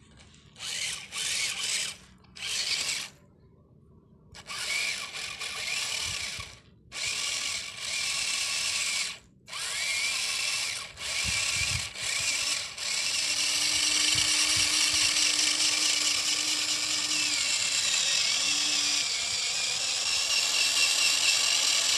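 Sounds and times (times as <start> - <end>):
low steady hum: 0.0 - 9.6
small electric motor whining: 0.1 - 3.2, 4.4 - 21.9.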